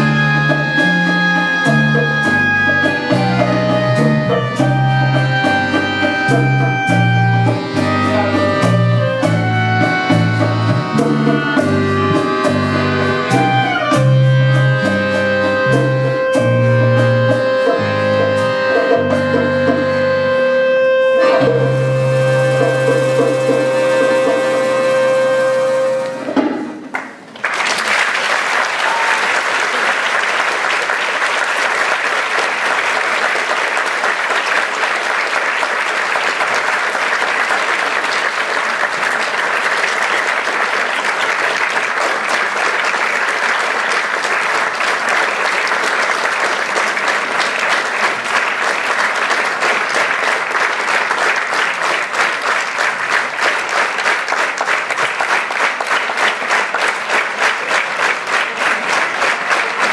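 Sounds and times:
rhythmic clapping: 0.0s - 59.9s
audience applause: 22.6s - 59.9s.

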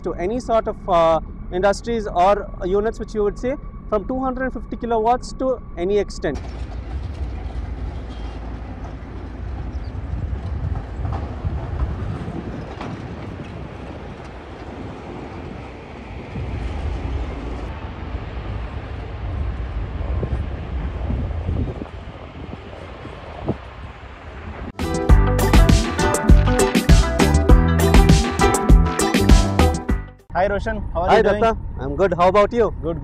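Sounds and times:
crushing machinery rumble: 0.0s - 26.6s.

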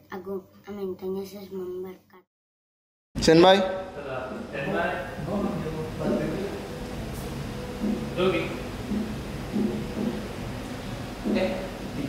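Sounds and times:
low rumble of background noise: 3.2s - 12.0s.

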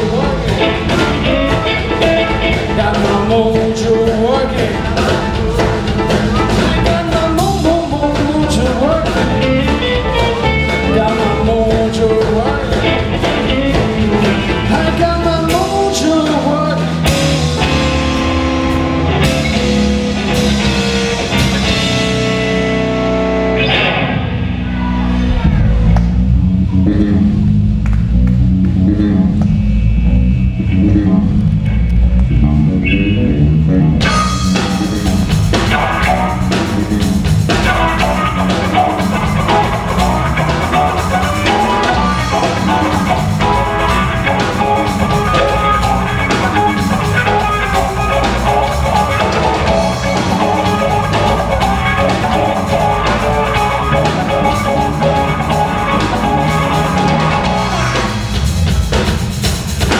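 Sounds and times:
electric blues band playing: 0.0s - 59.9s.

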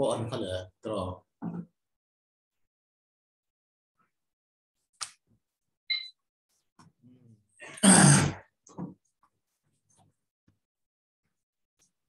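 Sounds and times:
man clearing his throat: 7.6s - 8.5s.

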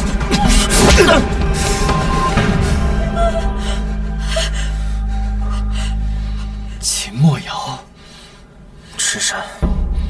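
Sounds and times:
low drone score: 0.0s - 8.8s.

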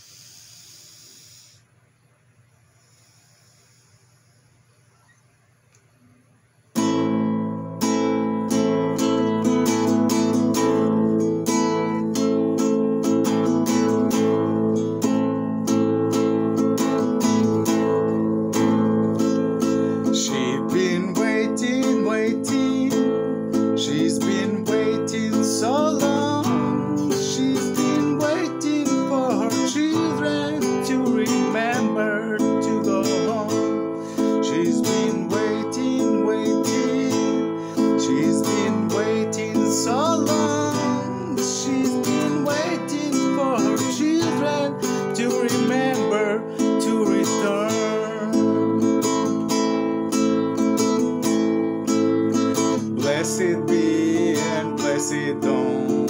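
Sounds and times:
acoustic guitar strumming: 6.7s - 56.0s
man singing: 19.2s - 50.6s, 51.9s - 56.0s.

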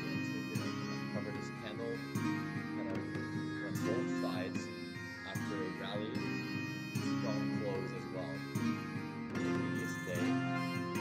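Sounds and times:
celtic instrumental music: 0.0s - 11.0s
plucked strings: 0.0s - 11.0s.

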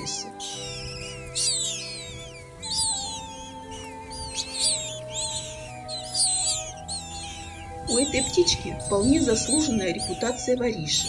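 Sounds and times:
nestlings squeaky begging calls: 0.0s - 11.0s
slow held music notes: 0.0s - 11.0s.

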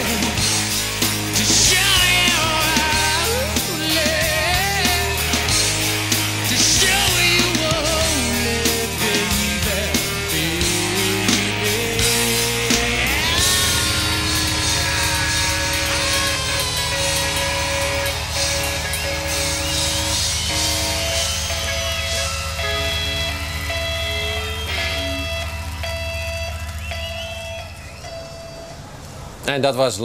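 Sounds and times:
low bass drone: 0.0s - 28.4s
electric guitar feedback: 0.0s - 29.5s.

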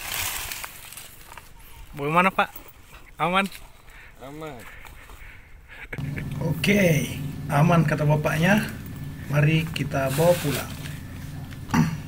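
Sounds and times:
rustling in dry leaves: 0.0s - 3.0s, 6.0s - 11.7s.

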